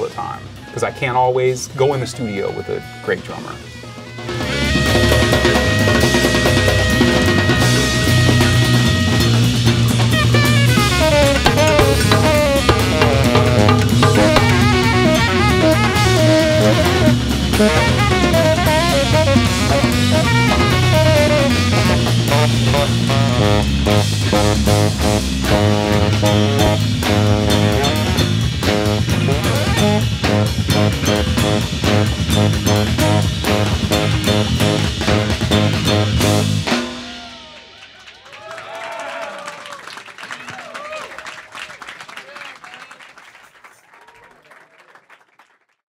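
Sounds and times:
sliding pitches: 0.8 - 37.7
bass guitar: 1.7 - 37.6
saxophone: 2.0 - 37.7
drum kit: 3.0 - 37.7
electric guitar: 4.0 - 37.2.

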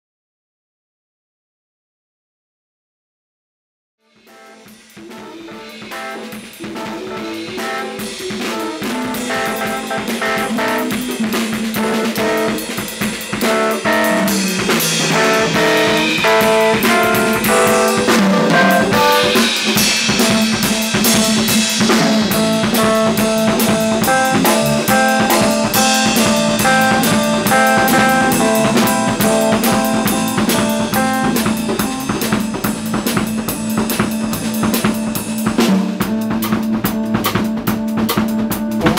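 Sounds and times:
drum kit: 4.0 - 38.9
keyboard notes: 4.3 - 33.7
guitar: 4.3 - 38.9.

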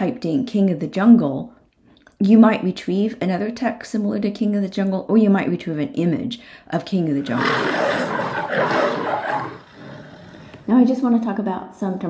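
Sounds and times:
lion roaring: 7.2 - 10.7.

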